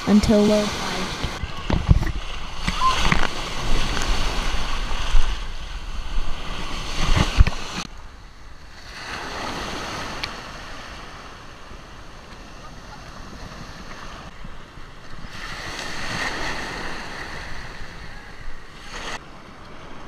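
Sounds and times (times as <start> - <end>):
wind on microphone: 0.0 - 19.2
ocean surf breaking and washing: 0.0 - 20.0.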